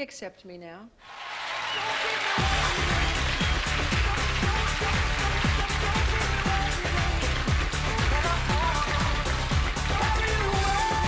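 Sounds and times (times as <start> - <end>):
pop music with bass and drums: 2.3 - 11.0.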